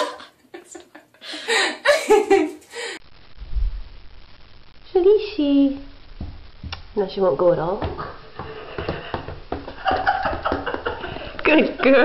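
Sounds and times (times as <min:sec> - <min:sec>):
paws tapping on hardwood floor: 0:07.8 - 0:10.8.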